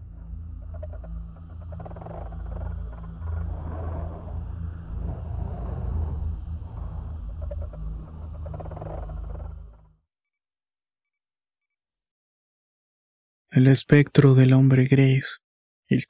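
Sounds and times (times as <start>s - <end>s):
deep low rumble: 0.0s - 10.0s.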